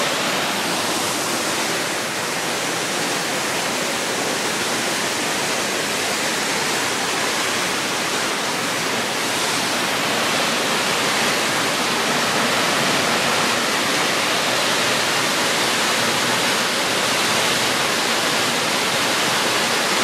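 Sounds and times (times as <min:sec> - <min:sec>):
waterfall rushing over rocks: 0:00.0 - 0:20.0.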